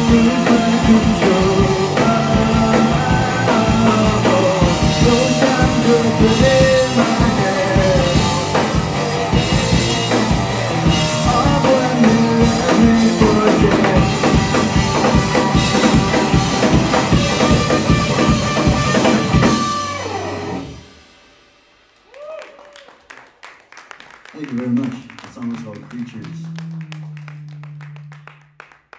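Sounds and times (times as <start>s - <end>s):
bass guitar: 0.0s - 20.9s, 25.6s - 28.9s
electric guitar: 0.0s - 21.2s, 25.9s - 28.8s
drum kit: 0.0s - 22.4s.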